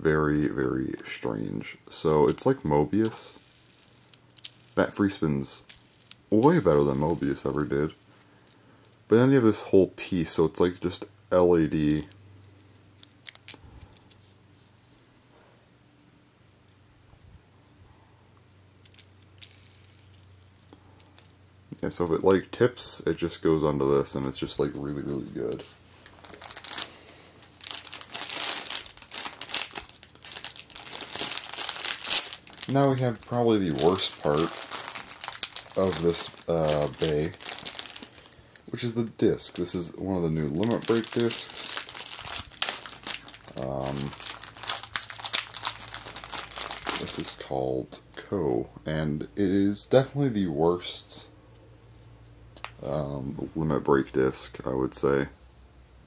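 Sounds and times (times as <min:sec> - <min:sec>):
plastic packaging crinkling: 0:02.4 - 0:08.2, 0:24.6 - 0:47.5.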